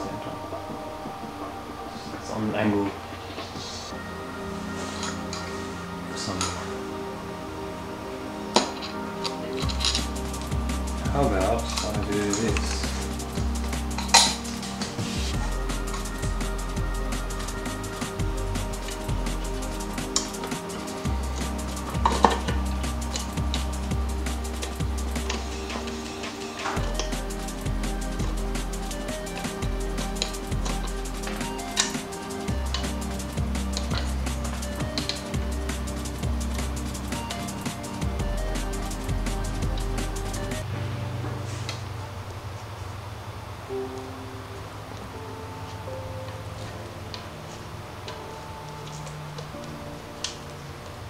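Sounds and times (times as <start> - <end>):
background music: 0.0 - 51.0.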